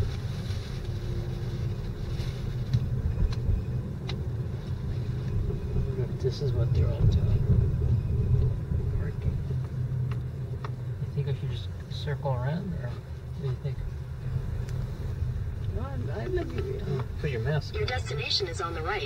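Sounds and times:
car engine and tyre rumble: 0.0s - 19.0s.

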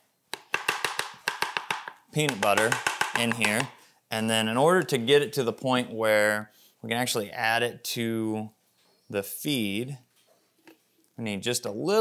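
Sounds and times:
utensil tapping a container: 0.4s - 3.8s.

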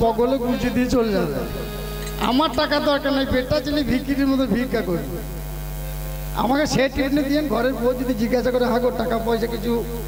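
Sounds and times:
man speaking over loudspeakers: 0.0s - 5.4s, 6.3s - 10.0s
electrical mains hum: 0.0s - 10.0s.

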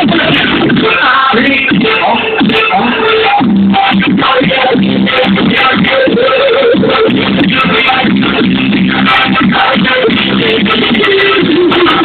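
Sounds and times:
live band music: 0.0s - 12.0s.

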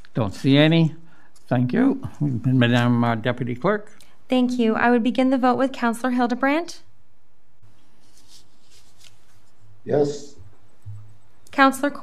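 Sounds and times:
man speaking: 0.0s - 4.0s, 9.9s - 10.4s.

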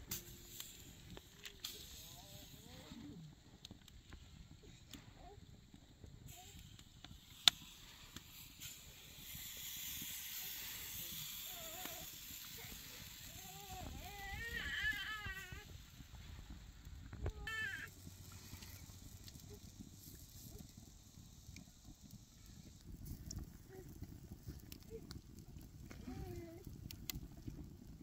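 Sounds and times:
faint steady hiss: 0.0s - 28.0s
animal wavering cry: 17.4s - 17.9s.

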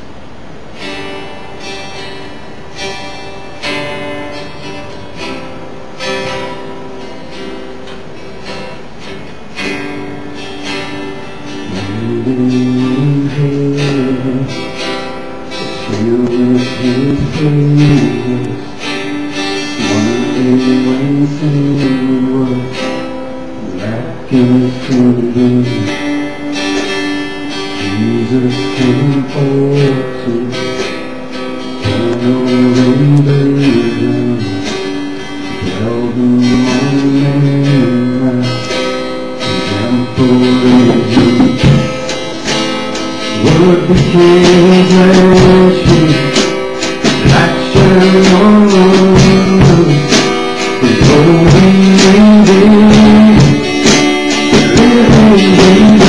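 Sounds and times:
acoustic guitar strumming: 0.0s - 56.0s
man singing: 11.6s - 26.3s, 27.4s - 30.9s, 31.8s - 56.0s.

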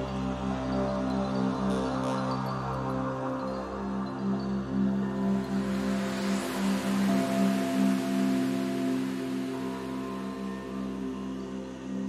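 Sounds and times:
soft hiss: 4.9s - 12.0s.

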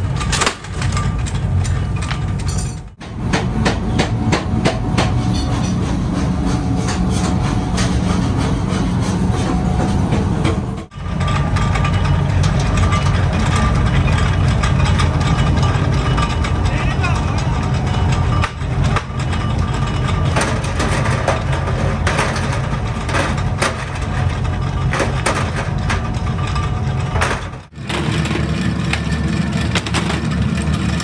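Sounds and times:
sharp metal clanks and clicks: 0.0s - 6.0s, 9.4s - 31.0s
power press droning: 0.0s - 31.0s.

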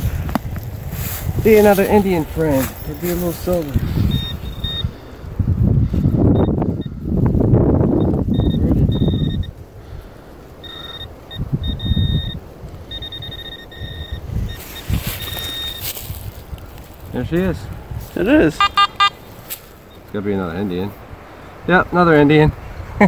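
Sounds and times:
metal detector beeping: 1.5s - 5.0s, 6.3s - 7.0s, 7.9s - 9.6s, 10.6s - 16.2s, 18.3s - 20.2s
dirt being dug by hand: 14.2s - 18.4s, 19.2s - 19.8s.

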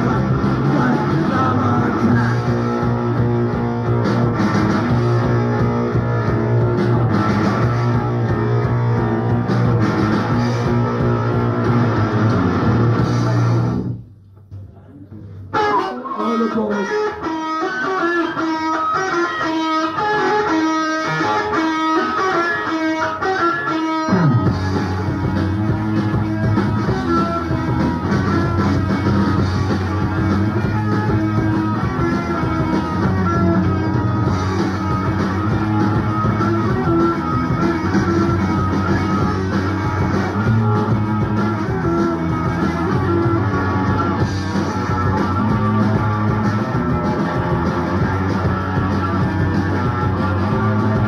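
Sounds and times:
electric guitar riff: 0.0s - 14.0s, 15.4s - 51.0s
punk rock band playing live: 0.0s - 14.0s, 15.5s - 51.0s.

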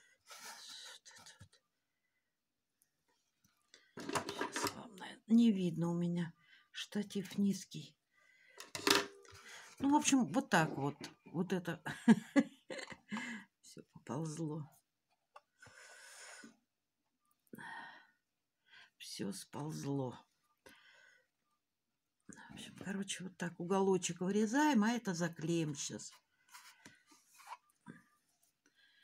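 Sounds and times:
faint handling sounds: 26.1s - 28.6s.

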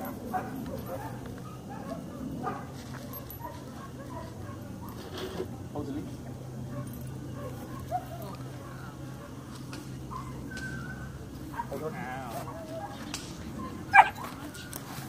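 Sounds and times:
puppy high calls: 10.1s - 14.9s.

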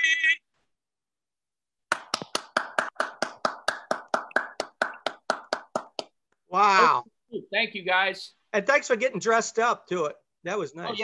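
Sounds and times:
person clapping: 1.9s - 6.3s.

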